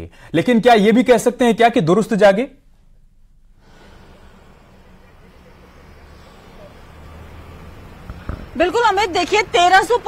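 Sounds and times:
low traffic rumble: 0.4 - 10.0.

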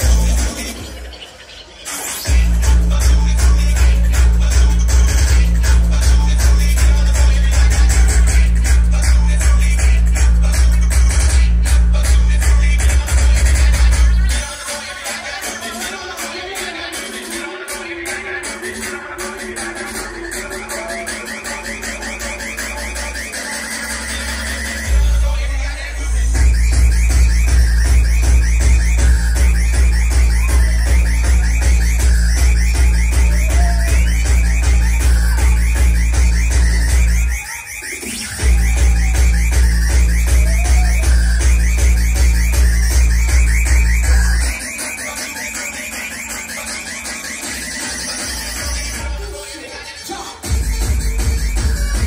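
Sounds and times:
electronic dance music: 0.0 - 52.0
heavy bass and beat: 0.0 - 52.0.

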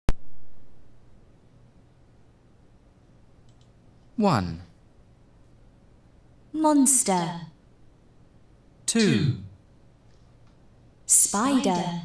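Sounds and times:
low hum: 0.1 - 3.3
faint computer mouse click: 3.4 - 3.8.

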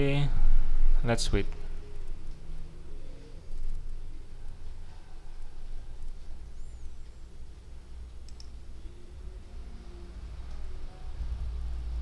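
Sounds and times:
steady low hum: 0.0 - 12.0
small sharp clicks: 8.1 - 8.6.

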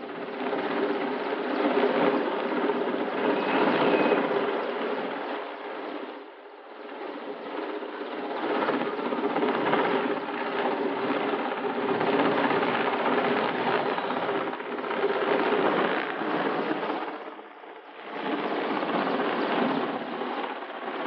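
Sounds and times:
helicopter engine whine: 0.0 - 21.0
helicopter rotor chopping: 0.0 - 21.0.

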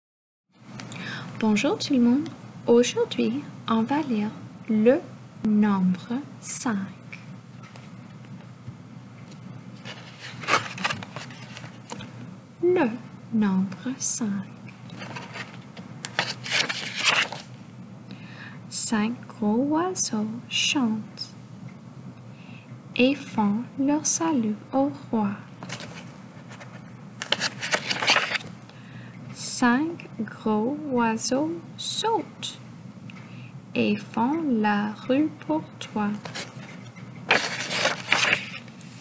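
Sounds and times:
book pages rustling and flapping: 9.2 - 12.2, 14.8 - 17.6, 25.6 - 28.6, 36.2 - 39.0.

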